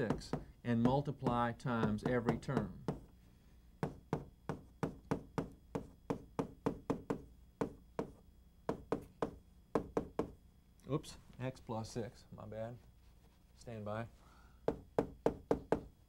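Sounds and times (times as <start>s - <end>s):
chalk tapping on chalkboard: 0.0s - 3.1s, 3.8s - 10.4s.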